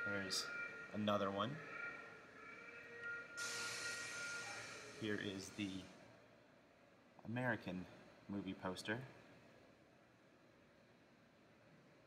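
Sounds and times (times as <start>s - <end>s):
faint high-pitched tones: 0.0s - 6.2s
steady hiss: 3.4s - 6.0s.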